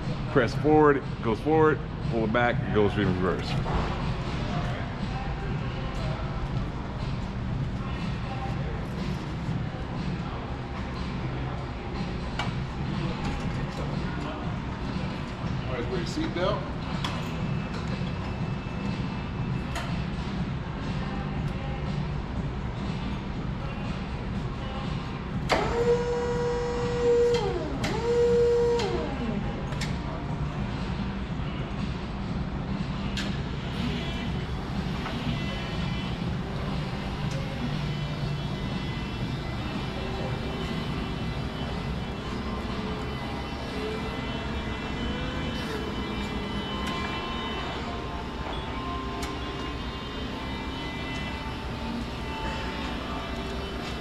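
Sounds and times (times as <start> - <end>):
steady low hum: 0.0 - 54.0
electric forklift motor whining: 25.5 - 29.2.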